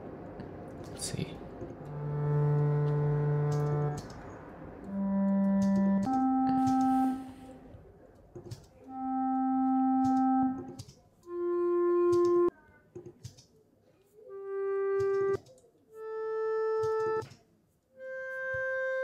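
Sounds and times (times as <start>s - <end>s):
clarinet long tones: 1.8s - 7.7s, 8.9s - 12.5s, 14.3s - 17.2s, 18.0s - 19.0s.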